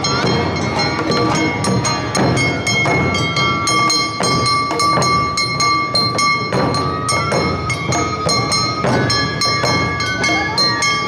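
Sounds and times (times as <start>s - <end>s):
large drums beating: 0.0s - 11.0s.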